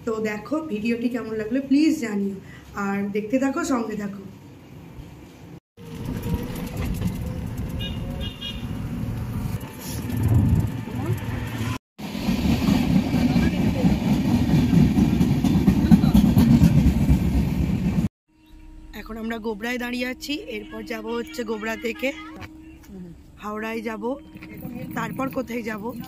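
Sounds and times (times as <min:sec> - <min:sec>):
traffic noise: 0:04.6 - 0:11.8, 0:19.8 - 0:26.0
train wheels rumbling on rails: 0:05.8 - 0:18.1
high horn toot: 0:07.2 - 0:08.8, 0:19.8 - 0:25.1.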